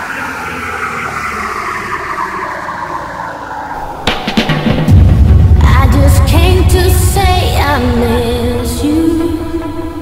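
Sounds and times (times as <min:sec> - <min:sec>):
synthesized noise sweep falling: 0:00.0 - 0:06.4
low synth drone: 0:00.0 - 0:10.0.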